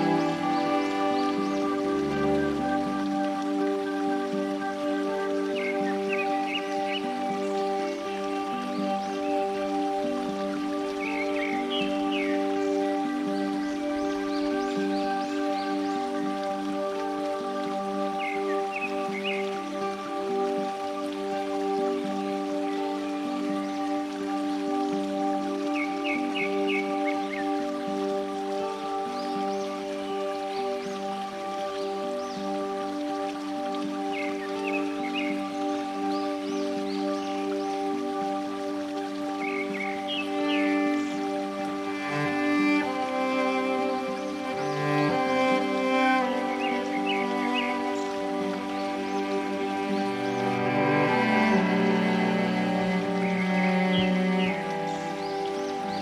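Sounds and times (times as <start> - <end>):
calm new-age instrumental music: 0.0 - 56.0.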